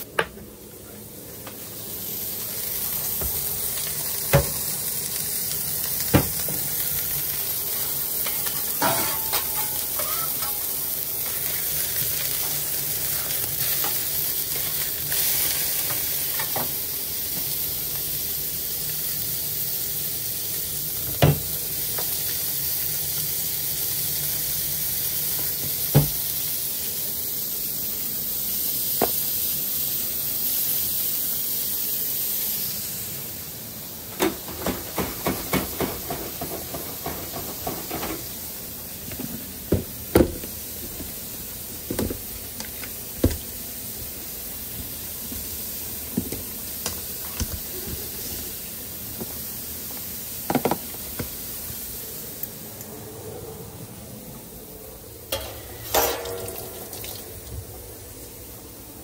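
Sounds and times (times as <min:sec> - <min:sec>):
burger patties sizzling on griddle: 0:00.0 - 0:59.0
metallic knocks of utensils: 0:55.3 - 0:56.7.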